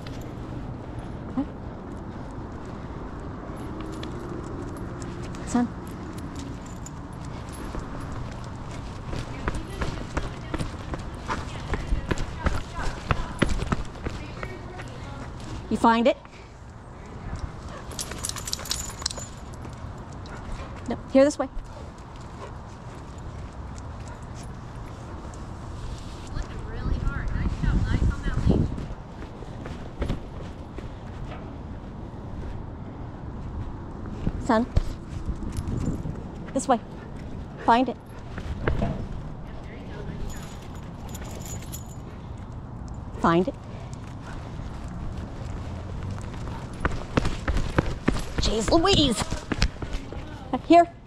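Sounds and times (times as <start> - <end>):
steady low rumble: 0.0 - 48.6
dog claws clicking on asphalt: 1.9 - 15.6, 16.7 - 20.9, 40.3 - 50.4
dog collar tags jingling: 3.4 - 11.7, 17.1 - 25.5, 35.3 - 36.8, 39.5 - 45.6.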